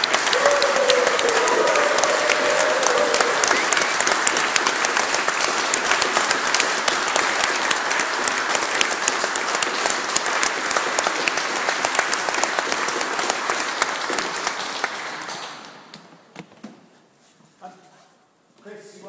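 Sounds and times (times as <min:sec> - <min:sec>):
audience applauding: 0:00.0 - 0:15.9.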